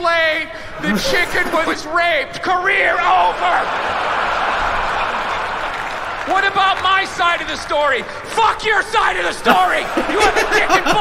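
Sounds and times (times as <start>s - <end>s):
audience applauding: 3.1s - 8.8s, 9.5s - 11.0s.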